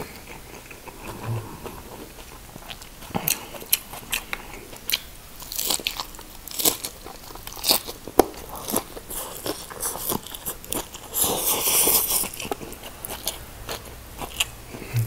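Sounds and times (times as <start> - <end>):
lettuce crunching: 1.9 - 15.0.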